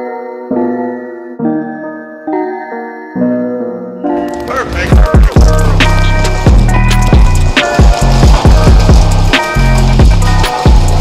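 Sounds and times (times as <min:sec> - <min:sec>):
hip-hop backing music: 0:03.9 - 0:11.0.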